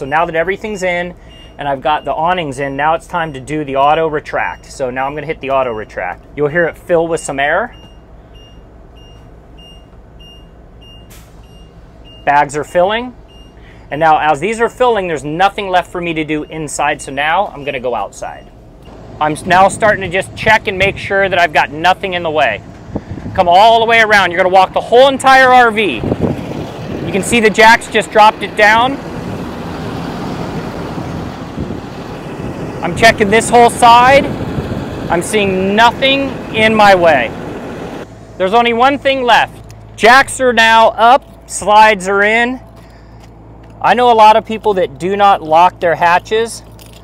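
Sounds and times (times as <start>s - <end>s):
engine idling: 0.0s - 47.0s
short high warning beeps: 1.2s - 2.3s, 7.7s - 13.9s.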